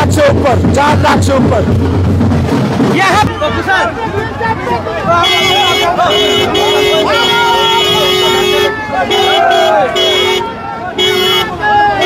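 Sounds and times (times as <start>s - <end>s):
crowd voices: 0.0s - 12.0s
vehicle horn honking: 5.2s - 11.7s.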